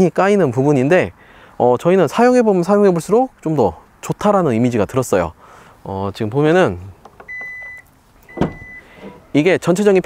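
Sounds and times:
tailgate thump: 7.1s - 9.3s
high warning beeps: 7.3s - 9.2s.

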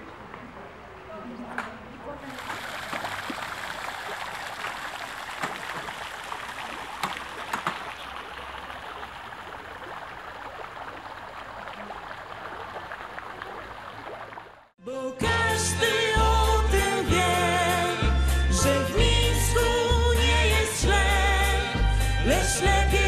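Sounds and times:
fountain water splashing: 2.2s - 14.7s.

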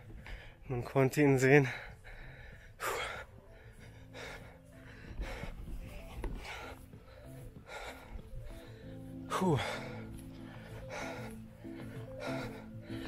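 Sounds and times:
man breathing hard: 0.0s - 0.7s, 1.5s - 13.0s.

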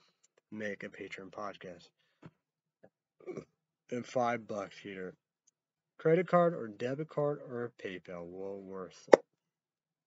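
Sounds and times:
man speaking: 0.5s - 1.9s, 3.9s - 5.2s, 6.0s - 9.2s
man's mouth noises: 3.2s - 3.6s.

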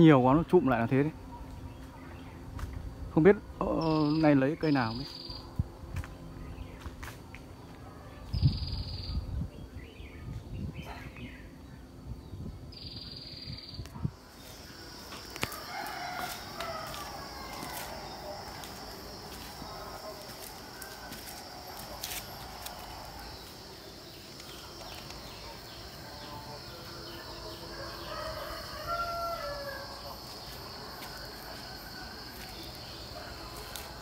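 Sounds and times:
high insect drone: 0.0s - 34.0s
rooster crowing: 14.8s - 19.7s, 27.6s - 32.7s.

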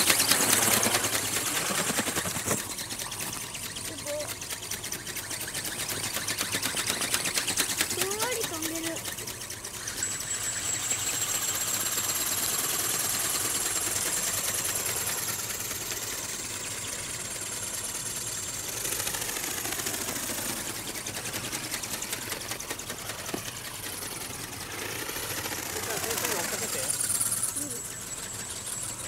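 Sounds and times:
ornithopter ticking buzz: 0.0s - 29.0s
thin high whine: 0.0s - 29.0s.

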